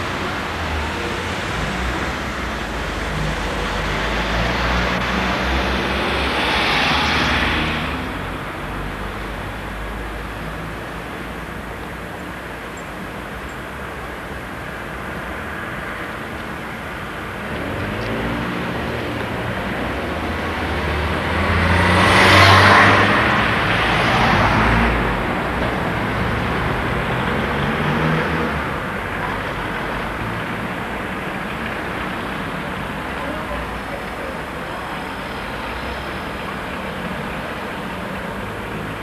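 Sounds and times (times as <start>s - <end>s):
cars driving past: 0.0s - 11.7s, 15.2s - 39.0s
car engines running: 15.8s - 39.0s.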